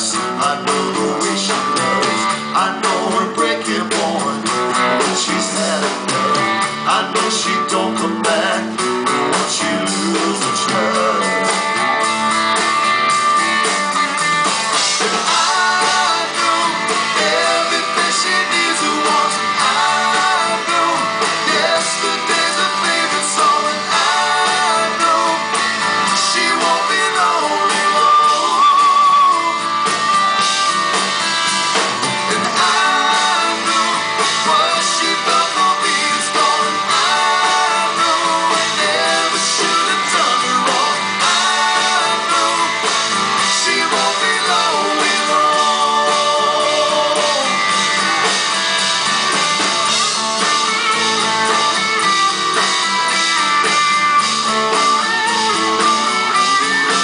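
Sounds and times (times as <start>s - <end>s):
man singing into microphone: 0.0s - 11.6s, 15.0s - 29.7s, 32.3s - 47.6s
bass guitar: 0.0s - 57.0s
electric guitar: 0.0s - 57.0s.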